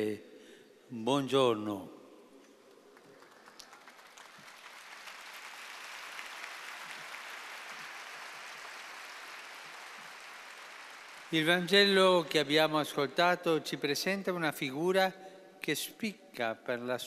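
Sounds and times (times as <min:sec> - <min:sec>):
crowd applauding: 0:02.9 - 0:12.0.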